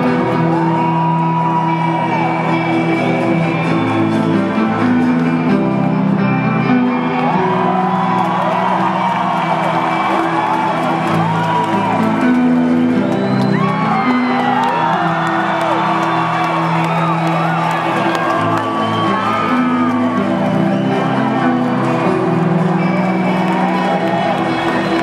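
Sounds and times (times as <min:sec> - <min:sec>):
audience whooping and shouting: 0:00.0 - 0:04.1, 0:06.6 - 0:25.0
live band synth and guitar chords: 0:00.0 - 0:25.0.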